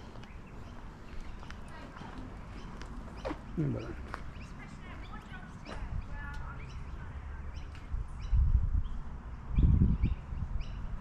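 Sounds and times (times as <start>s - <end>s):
footsteps on pavement: 0.0s - 7.9s
wind rumble on microphone: 5.0s - 11.0s.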